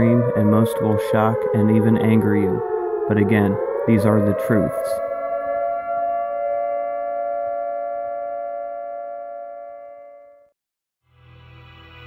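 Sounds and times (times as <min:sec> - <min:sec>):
electronic siren-like tone: 0:00.0 - 0:10.5.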